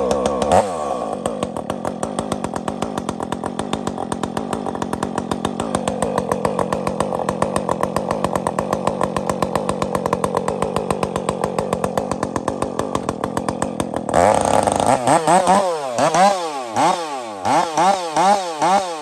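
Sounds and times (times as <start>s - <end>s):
chainsaw cutting a log: 0.0s - 19.0s.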